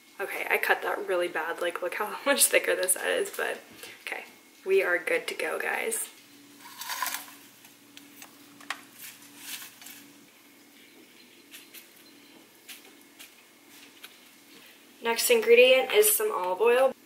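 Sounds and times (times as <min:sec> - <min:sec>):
faint steady low hum: 0:00.0 - 0:17.0.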